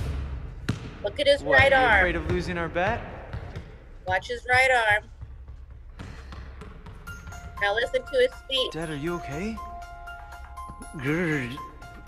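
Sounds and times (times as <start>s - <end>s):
basketball bouncing: 0.0s - 8.4s.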